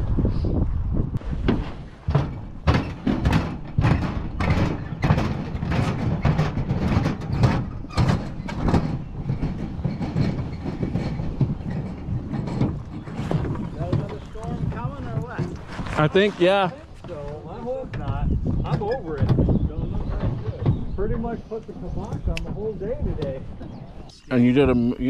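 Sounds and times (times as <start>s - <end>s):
low wind noise on microphone: 0.0s - 25.0s
footsteps on wooden dock: 1.2s - 24.9s.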